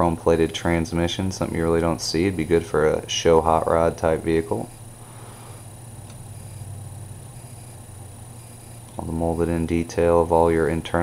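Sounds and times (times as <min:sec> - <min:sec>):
steady low hum: 0:00.0 - 0:11.0
faint hiss: 0:04.2 - 0:06.7.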